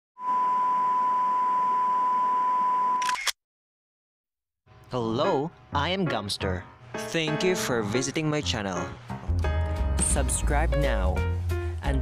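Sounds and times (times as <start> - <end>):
long steady beep: 0.2 - 3.0.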